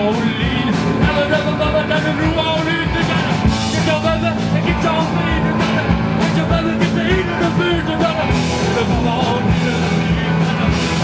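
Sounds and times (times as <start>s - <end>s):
bass guitar: 0.0s - 11.0s
drums: 0.0s - 11.0s
electric guitar: 0.0s - 11.0s
person singing: 0.0s - 11.0s.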